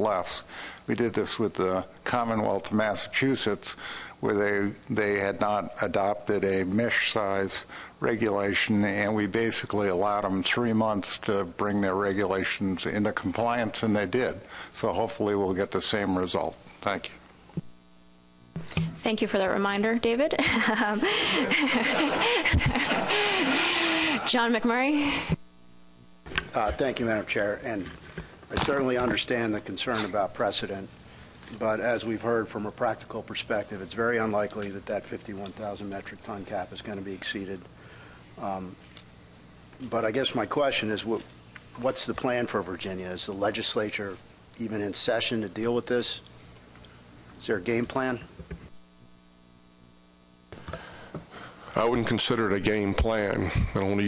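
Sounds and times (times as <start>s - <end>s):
faint electrical mains hum: 0.0s - 54.0s
man speaking: 26.5s - 37.7s, 38.4s - 38.8s, 51.7s - 54.0s.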